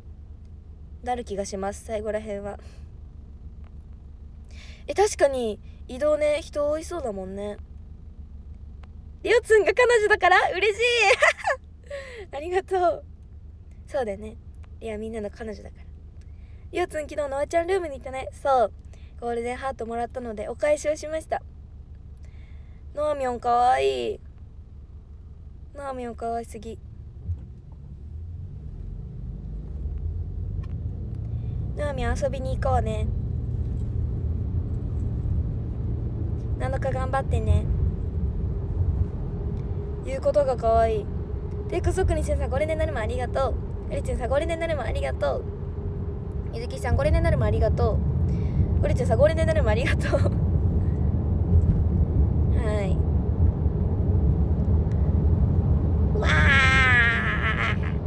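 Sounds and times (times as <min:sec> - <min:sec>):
car cabin rumble: 0:00.0 - 0:58.0
high-pitched vocal sound: 0:56.1 - 0:58.0.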